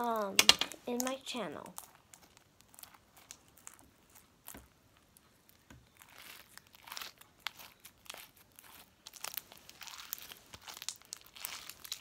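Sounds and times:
slime crackling and popping: 0:00.0 - 0:12.0.

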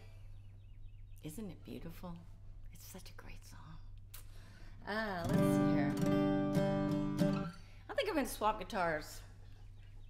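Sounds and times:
acoustic guitar chord ringing: 0:05.2 - 0:07.6.

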